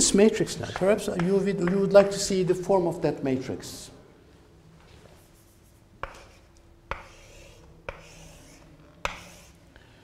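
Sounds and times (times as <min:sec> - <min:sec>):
chalk scratching: 0:00.7 - 0:02.1, 0:05.2 - 0:09.7
chalk tapping on blackboard: 0:00.7 - 0:02.2, 0:05.3 - 0:09.6.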